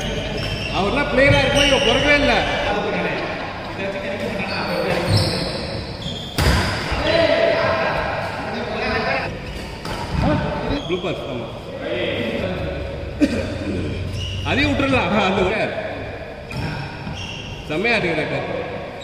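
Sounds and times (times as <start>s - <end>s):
players' voices: 0.0s - 19.0s.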